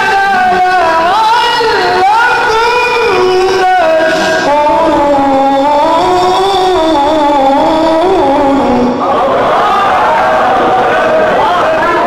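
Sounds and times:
man reciting melodically through microphone: 0.0 - 9.0.

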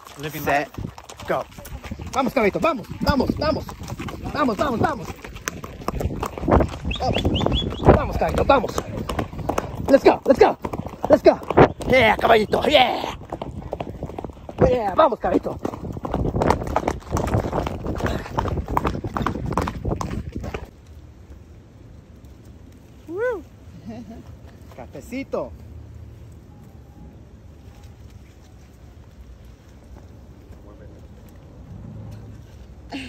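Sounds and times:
horse hoofbeats on dirt: 0.0 - 20.8
hooves clopping on gravel: 0.0 - 21.4, 24.0 - 26.8, 27.4 - 32.9.

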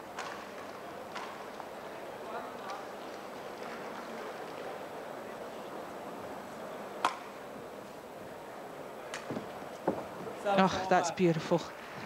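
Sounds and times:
sports hall ambience hum: 0.0 - 12.0.

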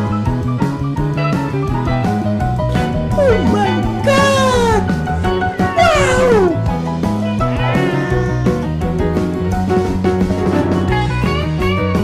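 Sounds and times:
background music: 0.0 - 12.0
cat meowing: 5.8 - 6.6, 7.6 - 8.8.

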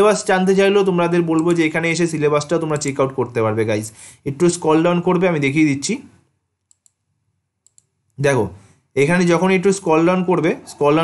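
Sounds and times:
computer mouse clicks: 1.3 - 1.6, 6.6 - 7.0, 7.6 - 8.0.

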